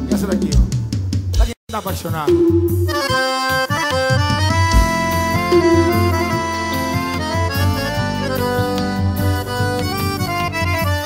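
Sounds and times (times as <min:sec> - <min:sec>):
band bass and beat: 0:00.2 - 0:10.8
accordion melody: 0:02.7 - 0:11.0.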